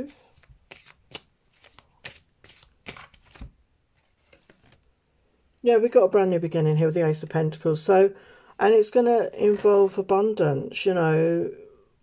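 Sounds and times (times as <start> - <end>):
cards being shuffled: 0.0 - 4.9.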